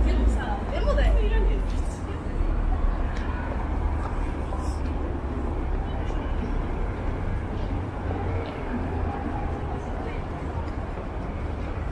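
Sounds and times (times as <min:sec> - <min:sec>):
cars passing rumble: 0:00.0 - 0:11.9
voices of passers-by: 0:00.0 - 0:11.9.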